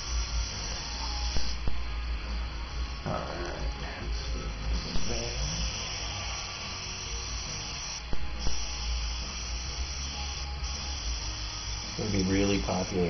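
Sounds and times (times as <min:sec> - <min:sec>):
airbrush spraying hiss: 0:00.0 - 0:13.0.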